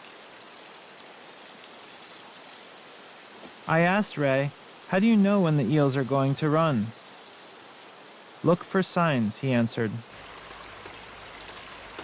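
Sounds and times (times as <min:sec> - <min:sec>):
faint ticks: 0:00.9 - 0:01.2, 0:10.4 - 0:12.0
river water rushing over weir: 0:10.1 - 0:12.0.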